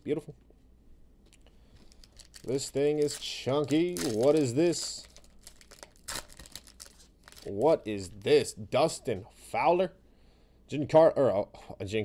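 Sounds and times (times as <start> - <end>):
foil wrapper crinkling: 1.8 - 8.5.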